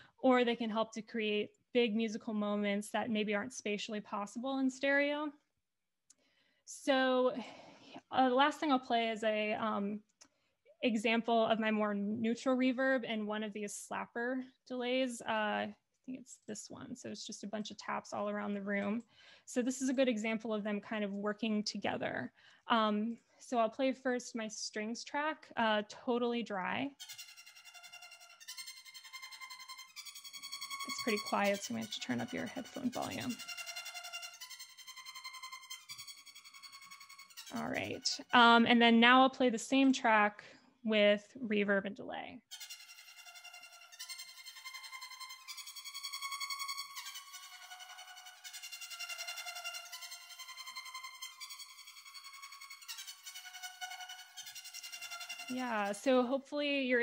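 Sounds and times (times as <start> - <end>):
sustained high string notes: 26.9 - 38.7, 42.5 - 56.3.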